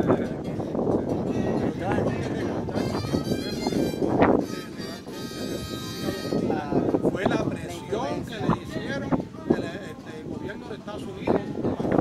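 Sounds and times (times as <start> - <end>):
steady held tone: 2.9 - 7.1.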